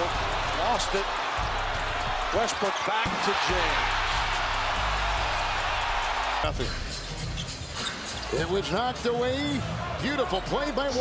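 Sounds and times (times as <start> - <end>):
crowd cheering: 0.0 - 7.0
music: 0.0 - 11.0.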